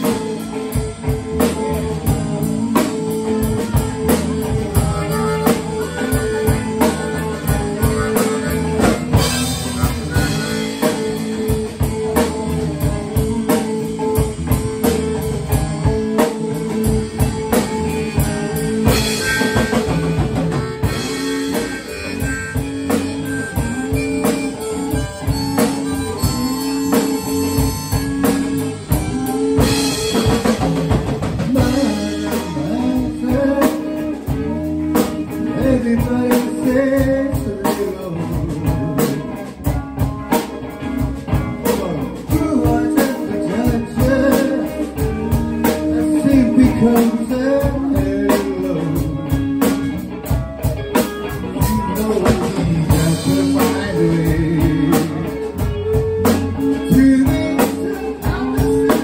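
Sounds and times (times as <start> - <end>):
drum kit steady beat: 0.0 - 59.0
electric bass: 0.0 - 59.0
electric guitars: 0.0 - 59.0
harmonica held notes: 0.0 - 59.0.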